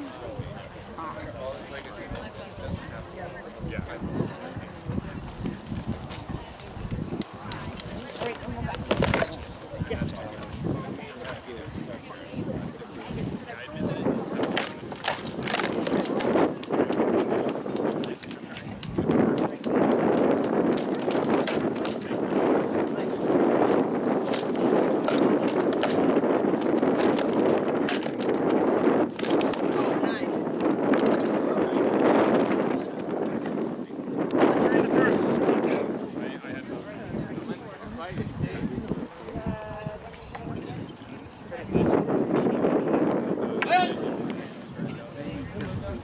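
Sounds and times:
crowd murmur: 0.0s - 46.0s.

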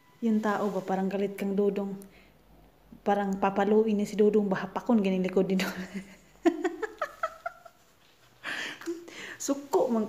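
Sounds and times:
woman giggling: 5.6s - 7.8s.

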